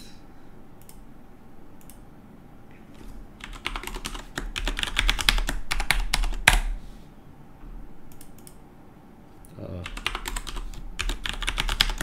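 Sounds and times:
keyboard typing: 3.0 - 6.7, 9.8 - 12.0.

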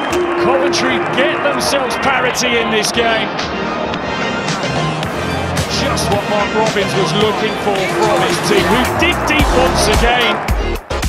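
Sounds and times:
commentator speaking: 0.0 - 3.5, 5.5 - 10.6
background music with bass notes: 3.3 - 11.0.

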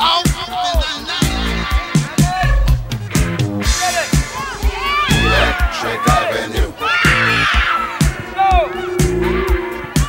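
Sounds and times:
music with steady beat: 0.0 - 10.0
children shouting and cheering: 3.7 - 10.0.

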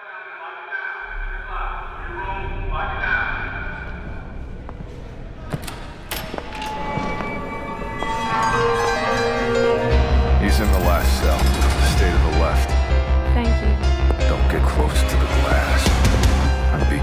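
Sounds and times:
indistinct voices: 0.0 - 17.0
film music: 1.0 - 17.0
deep low hum: 1.1 - 7.8.

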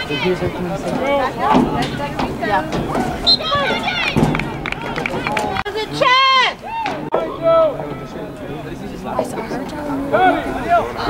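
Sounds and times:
voices shouting: 0.0 - 11.0.

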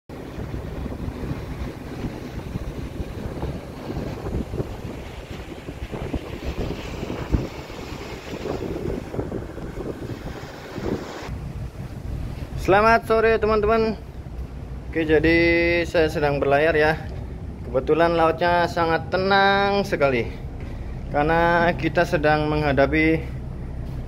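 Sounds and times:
wind buffeting microphone: 0.1 - 17.8.

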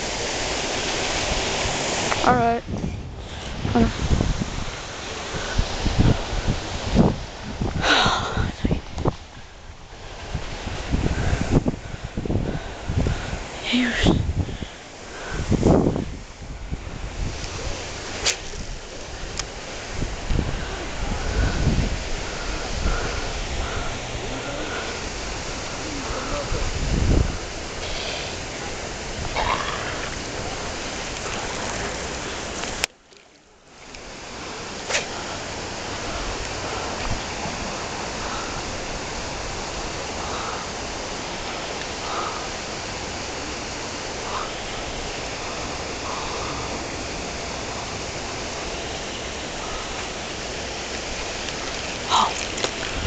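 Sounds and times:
wind buffeting microphone: 0.0 - 32.9, 33.8 - 53.0.

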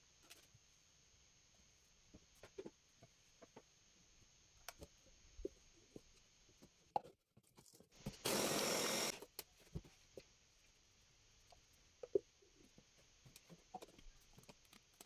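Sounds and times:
electric chopper motor: 8.2 - 9.2.

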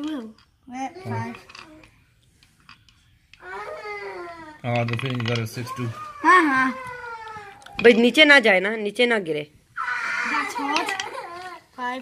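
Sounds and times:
child's high-pitched exclamation: 5.8 - 7.6, 9.8 - 11.3.

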